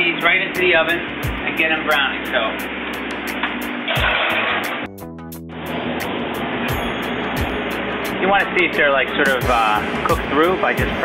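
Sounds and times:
kitchen ventilation rush: 0:00.0 - 0:04.9
music with steady beat: 0:00.5 - 0:11.0.

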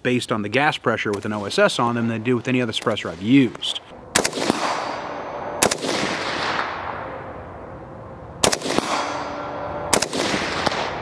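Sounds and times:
suppressed rifle shots: 0:04.1 - 0:07.2, 0:08.4 - 0:11.0
long echo of gunshot: 0:04.1 - 0:07.3, 0:08.4 - 0:11.0.

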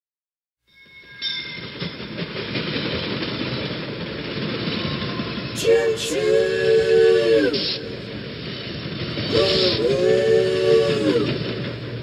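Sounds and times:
train rolling noise: 0:00.7 - 0:12.0
person singing: 0:05.6 - 0:07.8, 0:09.3 - 0:11.4.

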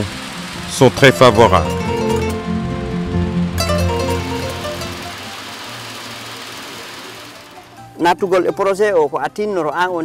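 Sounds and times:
maize sheller rushing hum: 0:00.0 - 0:08.3
background music: 0:00.0 - 0:10.0.

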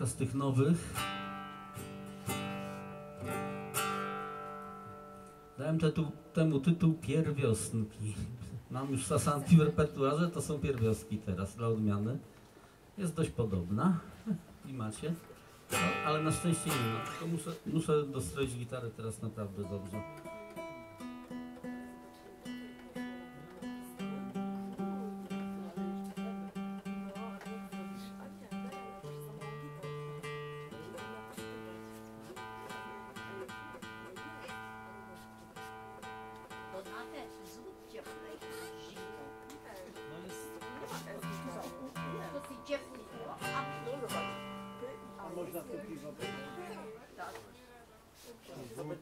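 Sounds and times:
guitar chords strummed: 0:00.0 - 0:07.4, 0:15.3 - 0:17.8, 0:19.4 - 0:47.0
guitar strings plucked in tuning: 0:15.7 - 0:17.5.

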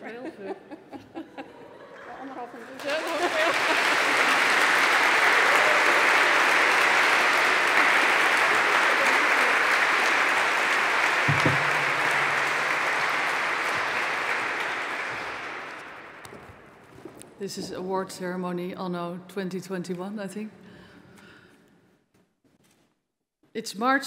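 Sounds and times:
audience applauding: 0:02.7 - 0:16.6.

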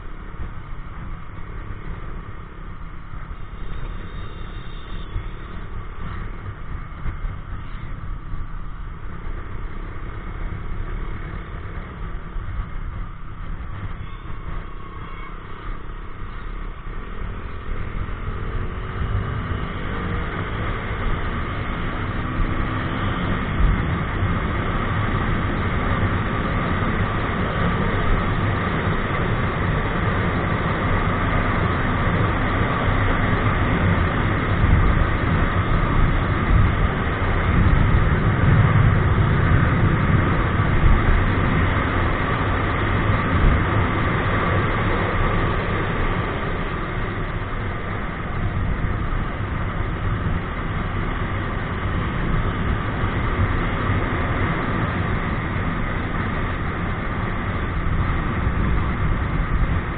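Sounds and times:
wind rush on microphone: 0:05.1 - 0:59.9.

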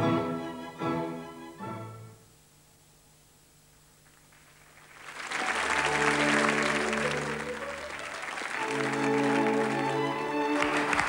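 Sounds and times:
audience applause: 0:04.1 - 0:11.0.

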